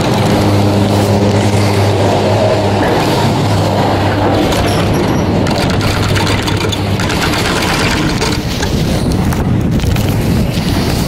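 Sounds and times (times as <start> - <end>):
chairlift low rumble: 0.0 - 11.0
wind on microphone: 0.0 - 11.0
lift clicking and rattling: 4.3 - 9.4.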